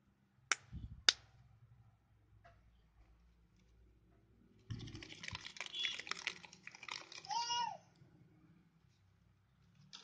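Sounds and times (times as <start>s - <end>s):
paper bag crinkling: 4.7s - 7.4s.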